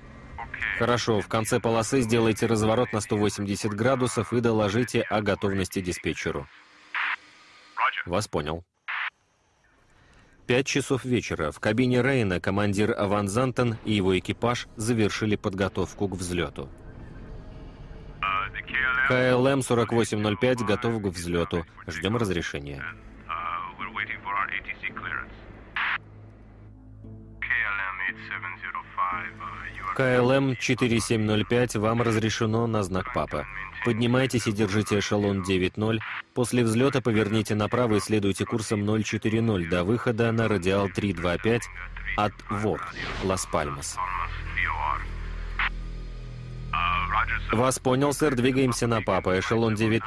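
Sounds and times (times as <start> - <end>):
low musical drone and hum: 0.0 - 3.4, 13.8 - 50.0
radio-like voices talking: 0.4 - 7.2, 7.8 - 9.2, 18.2 - 26.0, 27.4 - 45.8, 46.7 - 50.0
radio static crackle: 6.9 - 8.0, 8.8 - 9.2, 25.8 - 26.0, 35.9 - 36.3, 41.6 - 45.8
voice through a radio: 32.9 - 35.4, 46.8 - 50.0.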